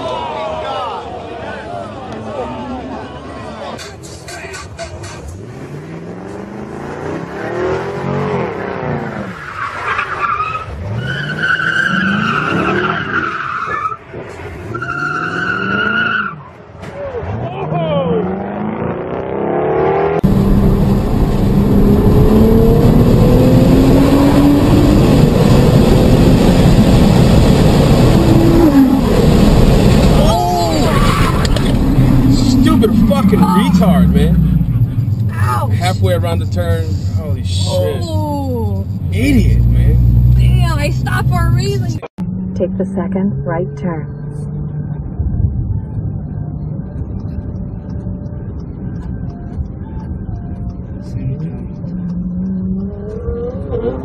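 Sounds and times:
car engine revving: 0:03.8 - 0:16.2, 0:17.2 - 0:54.0
car engine rising in pitch: 0:17.2 - 0:54.0.

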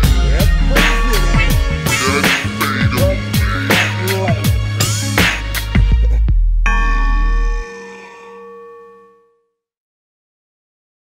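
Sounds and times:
deep bass of rap track: 0:00.0 - 0:07.1
bell-like note ringing: 0:06.7 - 0:09.6.

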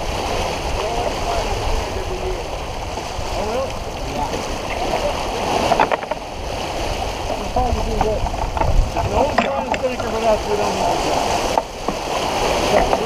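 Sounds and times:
water rushing along a hull: 0:00.0 - 0:13.0.

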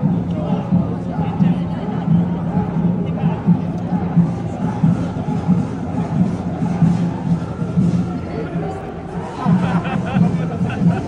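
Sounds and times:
music with low drumbeat: 0:00.0 - 0:11.0.

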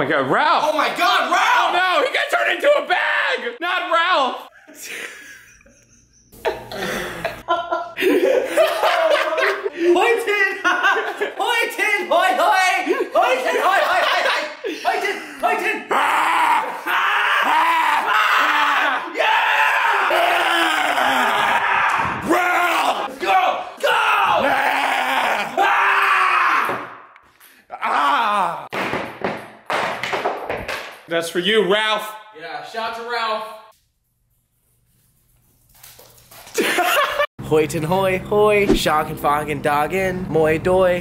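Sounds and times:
young man screaming: 0:15.5 - 0:26.9, 0:27.7 - 0:28.7.

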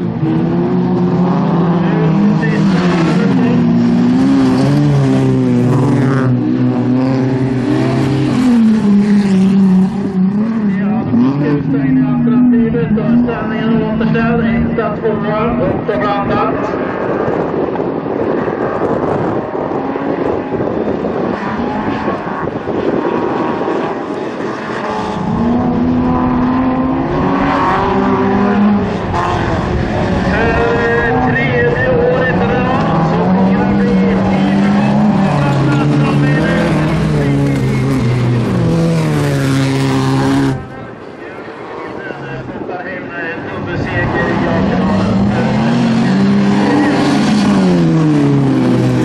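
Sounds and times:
race car engines revving: 0:00.0 - 0:49.0.

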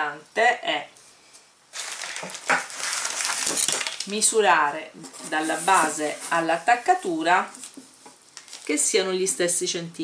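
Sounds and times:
hands moving objects on paper: 0:01.8 - 0:03.9, 0:05.0 - 0:08.8.

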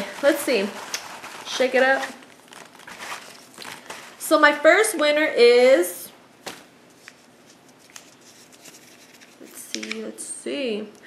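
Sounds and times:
paper rustling and crackling: 0:00.0 - 0:04.2, 0:06.4 - 0:10.0.

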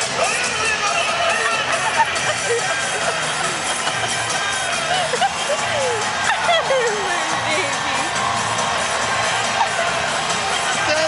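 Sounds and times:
crowd calling and cheering: 0:00.0 - 0:11.0
music over sound system: 0:00.0 - 0:11.0.

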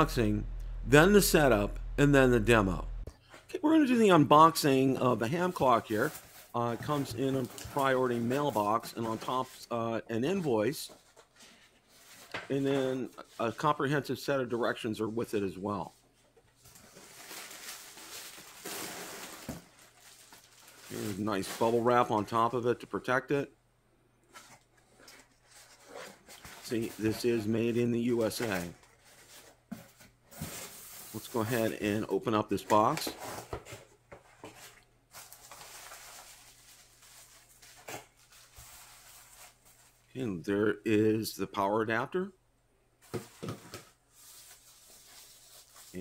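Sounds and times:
bubble wrap and cardboard crinkling: 0:05.0 - 0:13.8, 0:15.8 - 0:22.7, 0:24.3 - 0:40.2, 0:43.0 - 0:46.0.

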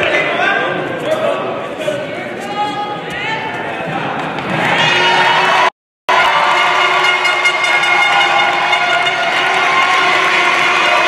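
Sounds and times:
arena crowd cheering and shouting: 0:00.0 - 0:11.0.

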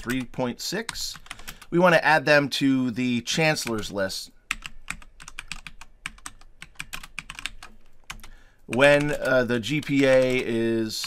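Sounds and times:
computer keyboard typing: 0:00.0 - 0:01.7, 0:04.5 - 0:11.0.

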